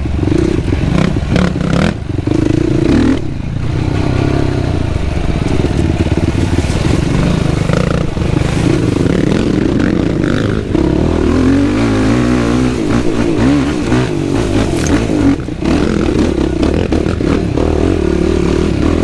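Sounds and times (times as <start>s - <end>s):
quad engine revving: 0.0s - 19.0s.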